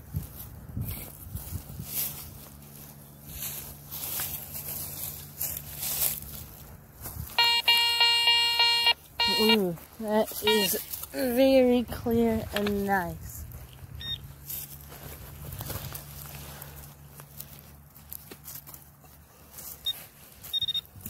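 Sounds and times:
metal detector buzzy tone pulses: 7.4s - 9.7s, 10.4s - 10.8s
person speaking: 9.2s - 13.5s.

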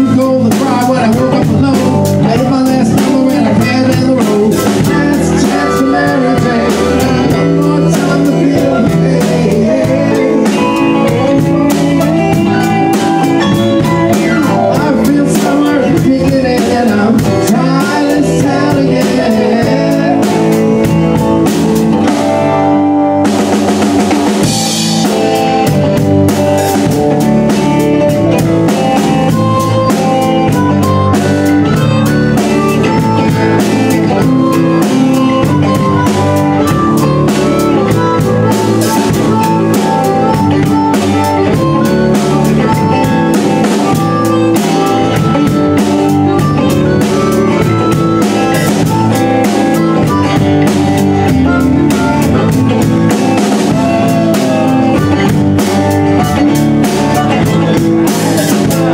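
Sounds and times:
drum kit beat: 0.0s - 58.9s
live rock band: 0.0s - 58.9s.

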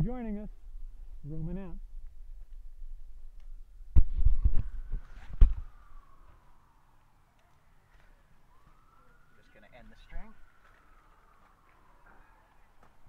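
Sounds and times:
faint distant siren wailing: 0.0s - 13.0s.

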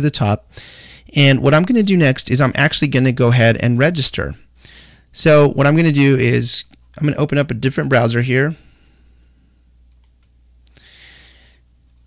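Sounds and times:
low steady hum: 0.0s - 12.0s
computer mouse clicks: 9.9s - 10.4s.

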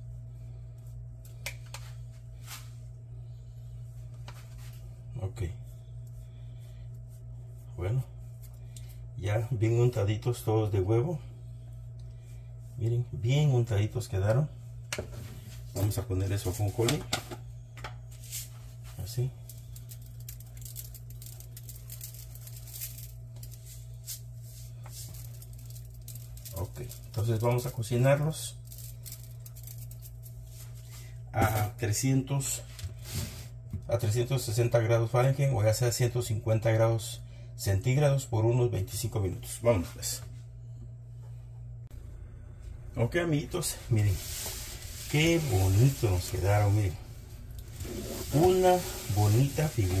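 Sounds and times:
low hum: 0.0s - 50.0s
pastry brush dabbing dough: 3.7s - 11.1s, 18.0s - 30.9s, 43.5s - 50.0s
seeds ticking on dough and tray: 19.0s - 23.6s.

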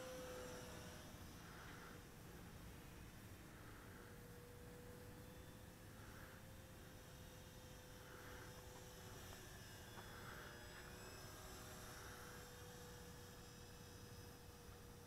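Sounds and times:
faint electric motor hum: 0.0s - 15.0s
faint high propeller whine: 0.0s - 15.0s.

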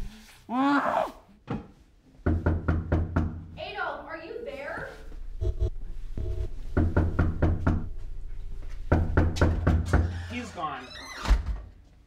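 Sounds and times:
heavy knocking thuds: 5.4s - 10.2s.

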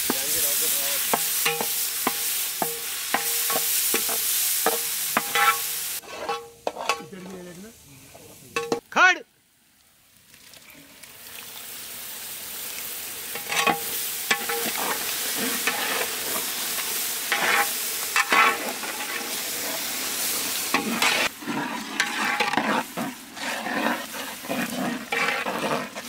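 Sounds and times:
wooden ladle scraping a pot: 0.0s - 7.3s, 13.3s - 26.0s
masala sizzling in a metal pot: 0.0s - 26.0s.

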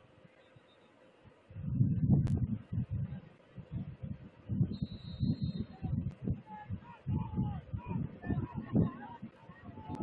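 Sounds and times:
distant shouting and calling: 5.0s - 10.0s.

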